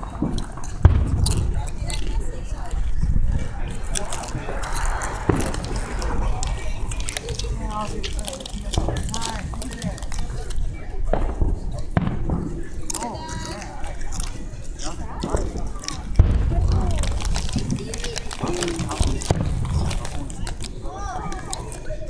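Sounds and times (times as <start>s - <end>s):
people talking: 0.0s - 22.0s
fireworks bangs: 0.1s - 9.6s, 10.6s - 12.9s, 15.3s - 20.9s
low rumble: 2.9s - 8.2s.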